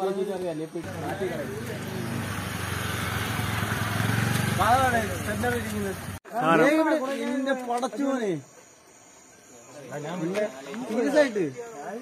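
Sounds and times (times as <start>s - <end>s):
men talking: 0.0s - 2.3s, 4.6s - 8.6s, 9.4s - 12.0s
motorcycle engine running: 0.8s - 6.2s.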